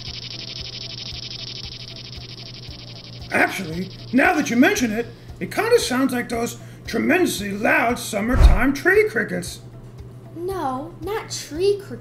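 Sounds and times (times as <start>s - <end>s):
cicada buzzing: 0.0s - 6.7s.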